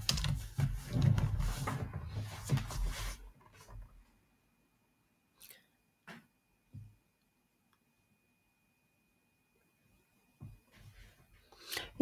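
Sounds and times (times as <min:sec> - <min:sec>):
rubbing and handling noises: 0:00.0 - 0:04.2.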